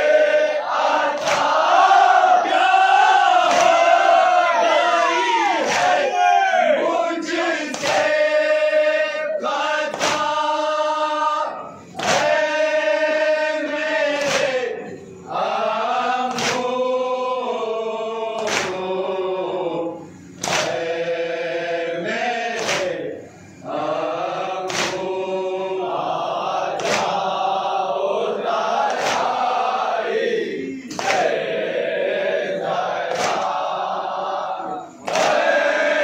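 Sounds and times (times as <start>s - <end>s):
men chanting in unison: 0.0s - 36.0s
chest-beating slaps: 1.2s - 1.6s, 3.5s - 3.8s, 5.6s - 6.0s, 7.7s - 8.1s, 9.9s - 10.4s, 12.0s - 12.4s, 14.2s - 14.6s, 16.3s - 16.7s, 18.4s - 18.8s, 20.4s - 20.9s, 22.6s - 23.0s, 24.7s - 25.1s, 26.8s - 27.2s, 28.8s - 29.4s, 30.9s - 31.3s, 33.1s - 33.6s.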